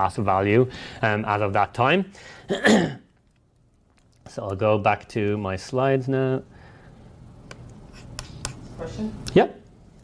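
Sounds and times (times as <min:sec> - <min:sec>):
man clearing throat: 0:02.5 - 0:03.1.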